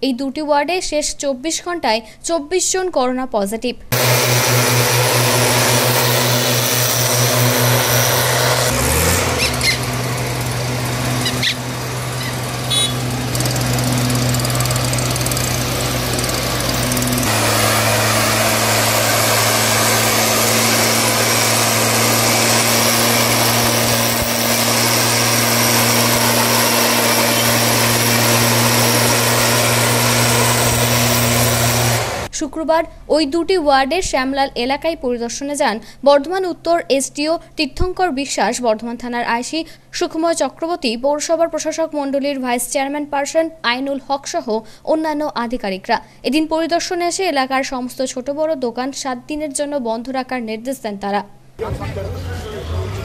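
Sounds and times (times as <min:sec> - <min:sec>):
two-stroke sprayer engine running: 0:03.9 - 0:32.3.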